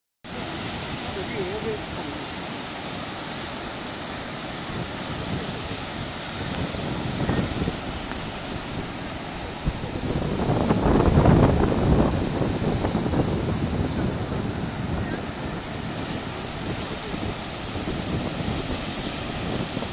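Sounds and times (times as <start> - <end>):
river rushing into a pool: 0.3 - 19.9
wind buffeting microphone: 0.3 - 19.9.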